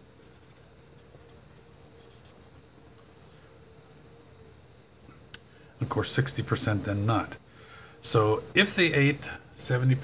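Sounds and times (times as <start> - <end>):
pen scratching on paper: 0.1 - 2.6.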